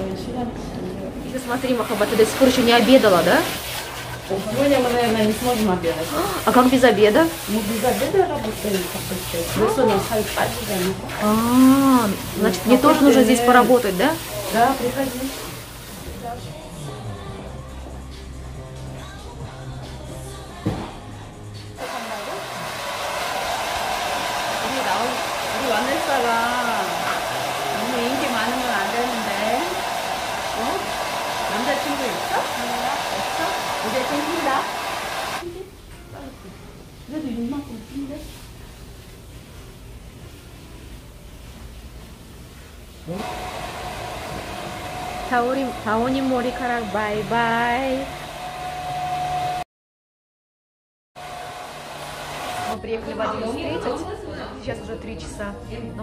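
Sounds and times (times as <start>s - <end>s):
hair dryer blowing: 1.3s - 16.3s, 21.8s - 35.4s, 43.1s - 49.6s, 51.2s - 52.8s.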